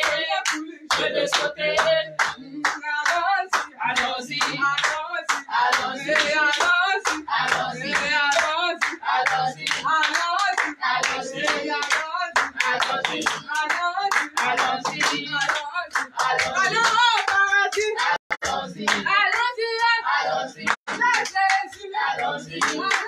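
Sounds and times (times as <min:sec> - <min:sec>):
group singing: 0:00.0 - 0:23.0
people clapping in rhythm: 0:00.0 - 0:23.0.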